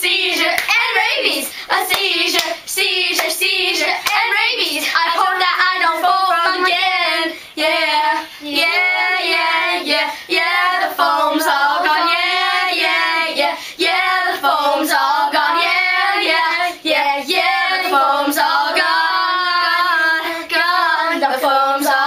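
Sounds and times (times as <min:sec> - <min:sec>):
young girls singing together: 0:00.0 - 0:22.0.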